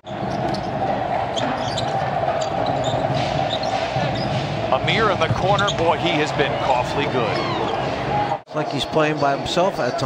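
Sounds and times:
arena crowd murmur: 0.2s - 10.0s.

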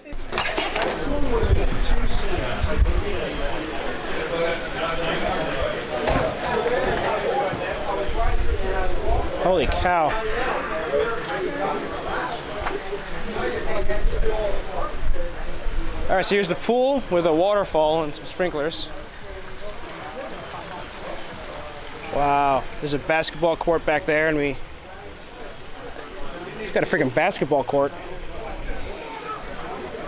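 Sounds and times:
indistinct group chatter: 0.0s - 30.0s
pool waterfall splashing: 0.0s - 30.0s.

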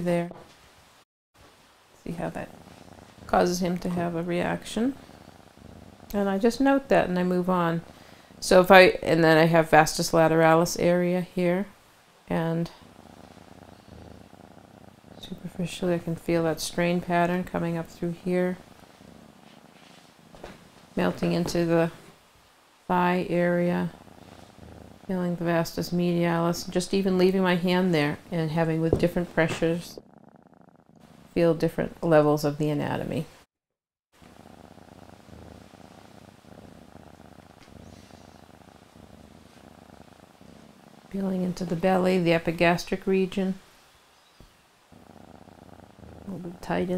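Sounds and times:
cat purring: 1.4s - 33.5s, 34.2s - 46.9s.

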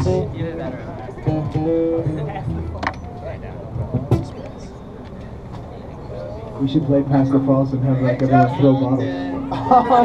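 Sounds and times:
acoustic guitar notes: 0.0s - 4.4s.

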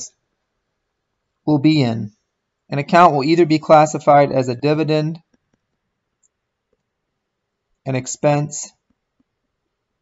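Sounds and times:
stylus clicks on tablet screen: 5.3s - 7.0s.

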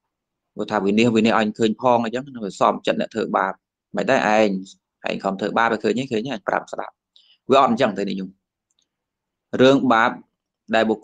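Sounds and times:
man speaking: 0.6s - 8.4s, 9.5s - 11.0s.

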